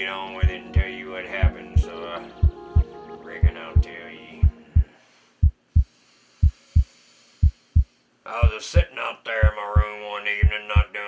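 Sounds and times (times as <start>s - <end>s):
heartbeat thumps: 0.4s - 8.6s, 9.4s - 10.9s
faint hiss: 3.5s - 10.3s.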